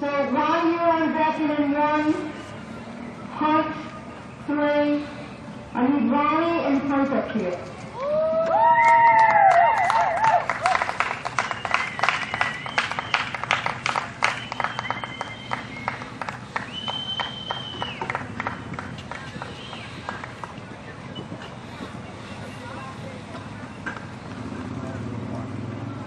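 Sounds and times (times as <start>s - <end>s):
people cheering: 7.9s - 21.0s
spectators clapping: 8.0s - 20.8s
long whistles: 11.4s - 18.2s, 19.4s - 20.2s.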